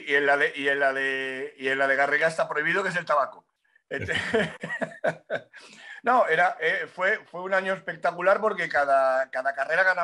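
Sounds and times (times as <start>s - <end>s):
man laughing: 3.9s - 5.6s.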